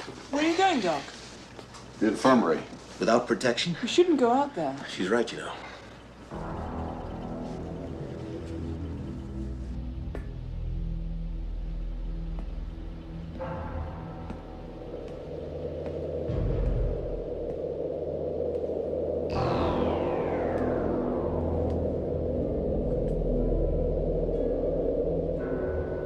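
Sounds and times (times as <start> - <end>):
synthesizer film score: 4.1 - 26.0
steady low rumble: 6.0 - 26.0
descending pitch sweep: 16.2 - 26.0.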